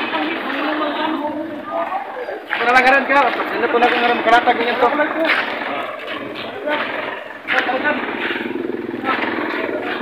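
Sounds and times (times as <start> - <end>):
people talking: 0.0 - 10.0
vehicle engine running: 2.4 - 10.0.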